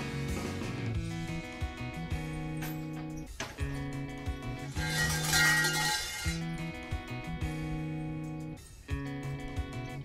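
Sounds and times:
acoustic guitar music: 1.4s - 8.2s.

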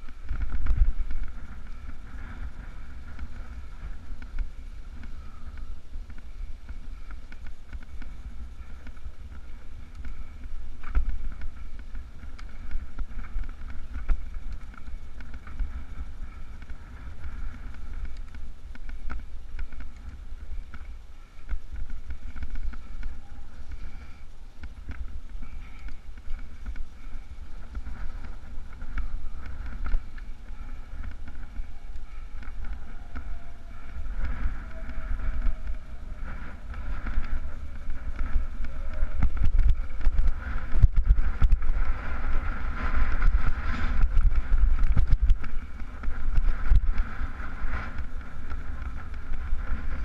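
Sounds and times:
clicks and rattles over stony track: 0.0s - 50.0s
wind buffeting microphone: 0.0s - 50.0s.

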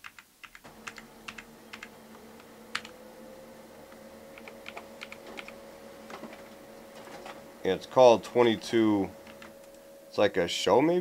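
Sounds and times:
steady hum: 0.6s - 11.0s.

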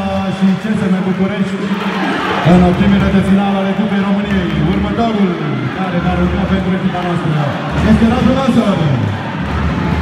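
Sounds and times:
man speaking over public address: 0.0s - 9.2s
crowd chatter: 0.0s - 10.0s.

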